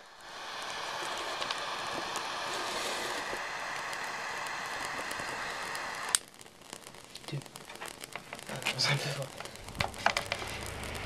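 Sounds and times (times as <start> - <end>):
faint crackles: 0.0 - 11.0
flame jet hissing: 0.0 - 11.0.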